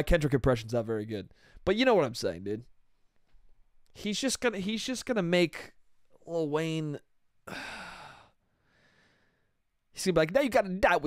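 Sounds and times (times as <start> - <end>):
man sighing: 7.4 - 9.2.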